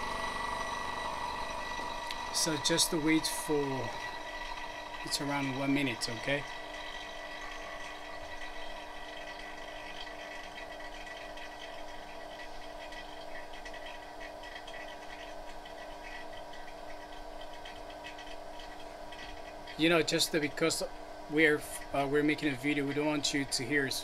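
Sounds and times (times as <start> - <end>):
laminating machine humming: 0.0 - 24.0.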